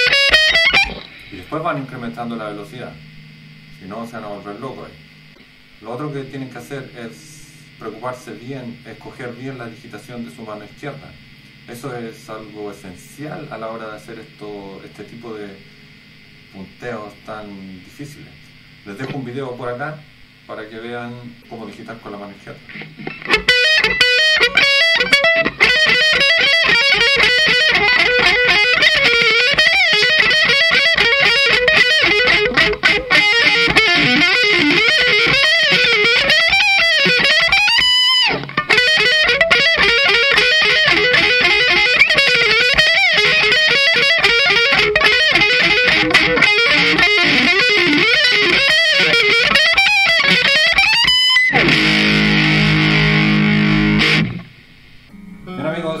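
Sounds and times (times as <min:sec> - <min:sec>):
distorted electric guitar shredding: 0:00.0 - 0:16.9, 0:21.4 - 0:56.0.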